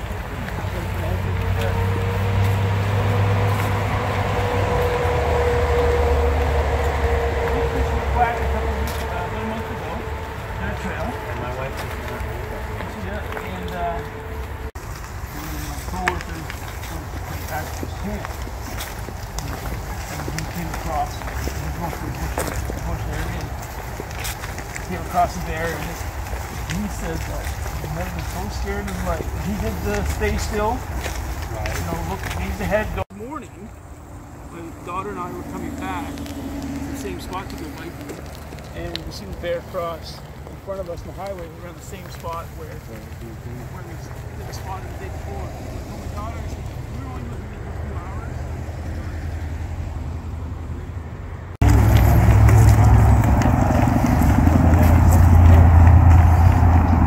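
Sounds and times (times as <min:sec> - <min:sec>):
crunches on gravel: 0:00.0 - 0:33.8, 0:34.4 - 0:48.3, 0:51.6 - 0:57.0
people talking indistinctly: 0:07.4 - 0:14.4, 0:15.3 - 0:33.8, 0:34.4 - 0:48.4.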